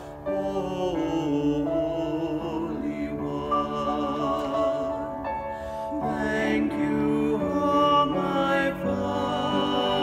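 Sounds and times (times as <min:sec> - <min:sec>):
woman and man singing duet: 0:06.0 - 0:10.0.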